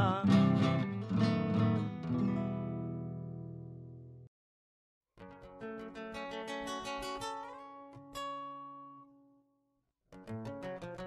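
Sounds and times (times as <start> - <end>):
acoustic guitar plucked notes: 0.0 - 4.3, 5.2 - 9.4, 10.2 - 11.0.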